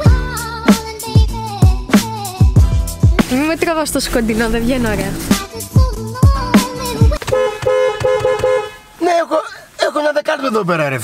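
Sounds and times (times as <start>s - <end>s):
car horn honking: 7.2s - 9.0s.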